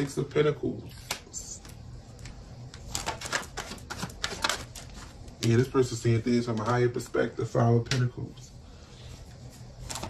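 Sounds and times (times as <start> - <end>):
cards being shuffled: 2.7 - 5.7.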